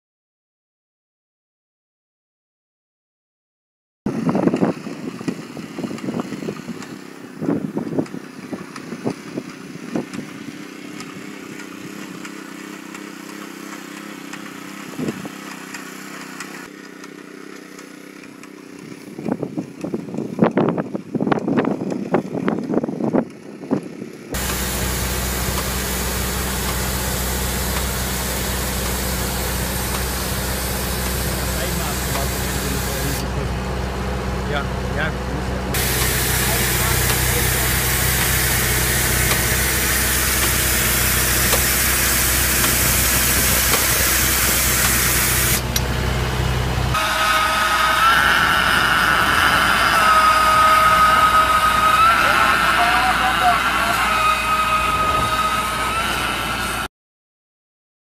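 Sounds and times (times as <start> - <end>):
machine engine running: 4.1 - 19.7, 24.3 - 56.9
line-striping machine humming: 24.3 - 56.9
paint spraying hiss: 24.4 - 33.2, 35.8 - 45.7
people talking: 30.0 - 33.6, 34.5 - 38.6, 47.3 - 56.3.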